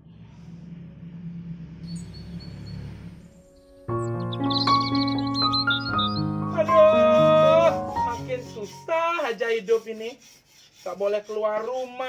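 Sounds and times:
steady low hum: 0.0 - 4.3
high chirping tone: 1.9 - 8.9.

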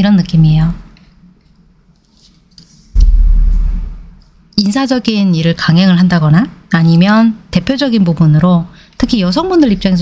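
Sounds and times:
loud low rumble: 3.0 - 4.3.

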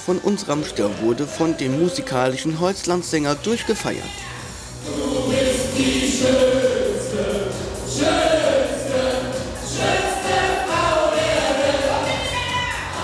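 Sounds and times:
music with steady beat: 0.5 - 13.0
man and woman singing: 4.8 - 13.0.

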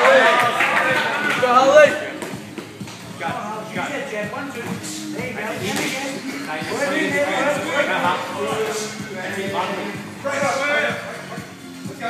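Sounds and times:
loud shout: 0.0 - 2.0
people shouting in a hall: 0.0 - 2.1.

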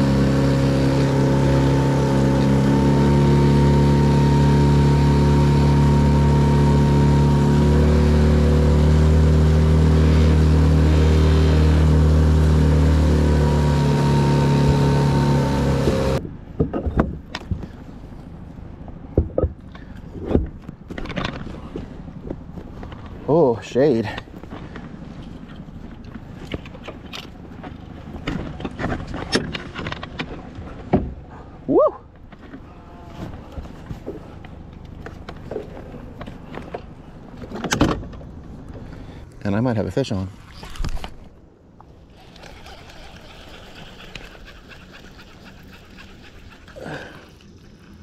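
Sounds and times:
fishing reel whirring and clicking: 42.1 - 48.0.

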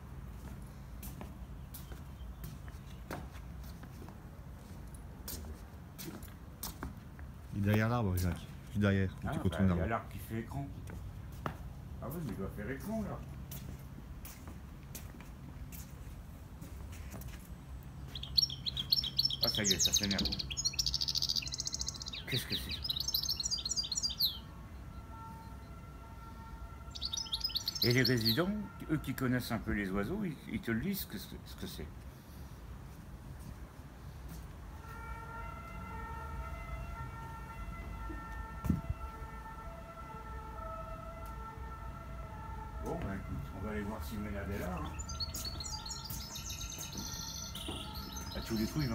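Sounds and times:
footsteps on wooden decking: 0.0 - 9.3, 10.7 - 19.2, 32.0 - 41.5, 42.5 - 48.9.

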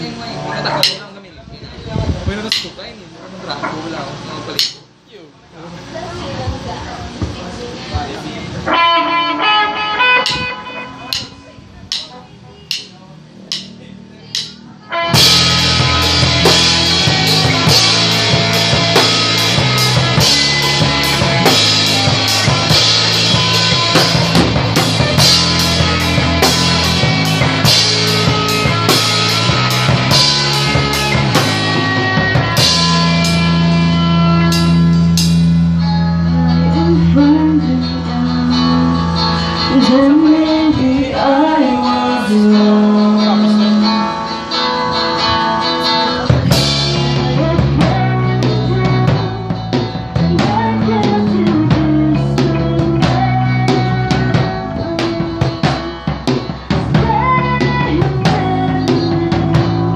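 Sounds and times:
guitar notes: 8.6 - 59.9
rock band playing: 8.6 - 59.9.

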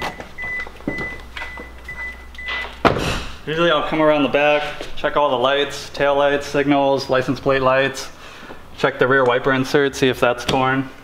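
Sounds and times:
car warning chime beeping: 0.0 - 2.8.

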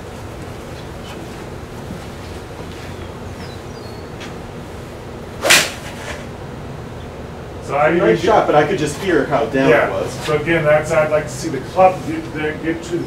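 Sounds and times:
golf club striking ball: 5.4 - 6.3
man talking: 7.6 - 13.0.

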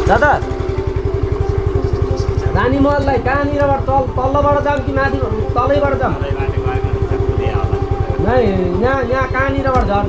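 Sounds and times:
motorcycle engine idling: 0.0 - 10.0.

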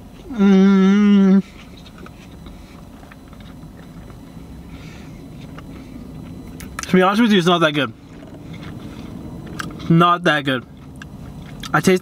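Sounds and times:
low steady background hum: 0.0 - 12.0
person chewing: 1.5 - 6.9, 8.0 - 9.9, 10.7 - 11.8.

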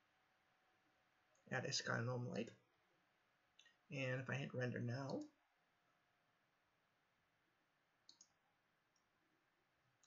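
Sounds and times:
soft computer mouse clicks: 5.0 - 5.3, 8.0 - 9.1.

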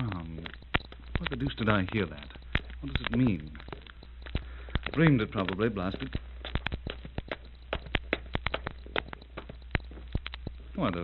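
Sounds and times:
record surface crackle and pops: 0.0 - 11.0
steady low hum: 0.0 - 11.0.

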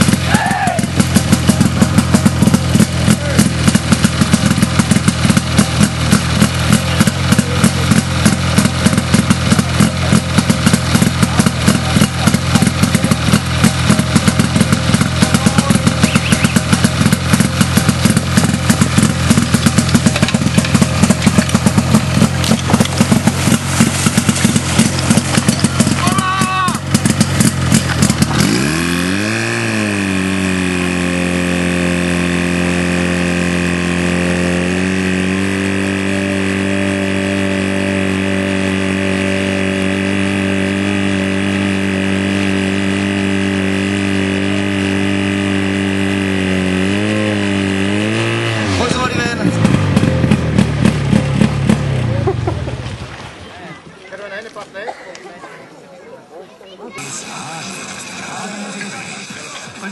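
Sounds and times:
pump engine running hard: 0.0 - 53.8, 56.9 - 59.9.

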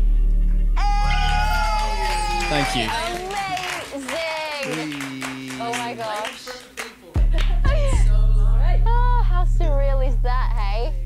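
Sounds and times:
woman cheering high-pitched: 0.8 - 4.8
voices cheering: 0.8 - 8.0.

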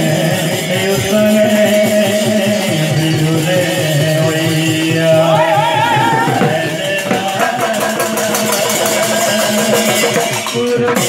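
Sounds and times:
drum beating steady rhythm: 0.0 - 11.0
people singing: 0.0 - 11.0.

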